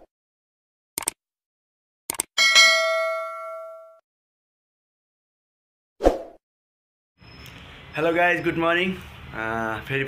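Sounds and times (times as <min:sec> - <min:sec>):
notification bell ding: 0:02.4 - 0:04.0.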